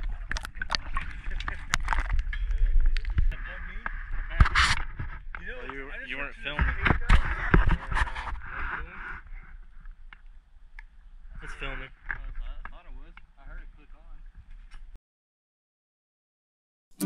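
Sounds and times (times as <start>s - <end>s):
indistinct voices talking: 0.0s - 9.0s.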